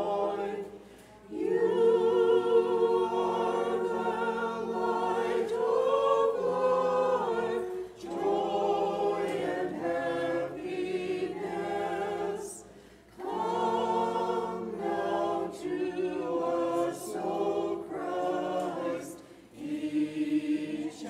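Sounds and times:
group singing chant: 0:00.0 - 0:21.0.

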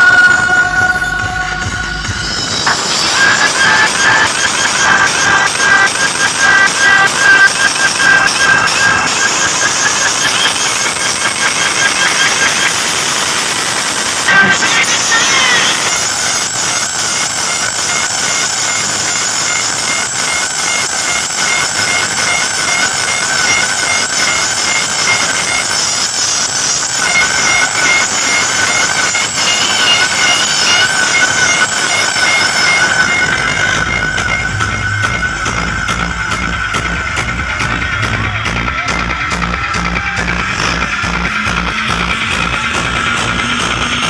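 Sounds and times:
warbling high tone: 0:00.0 - 0:12.8, 0:14.3 - 0:44.0
loud dj music: 0:00.0 - 0:44.0.

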